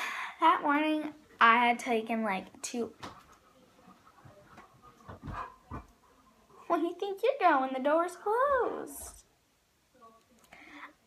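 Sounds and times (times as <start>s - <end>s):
dog moving: 3.0s - 6.0s.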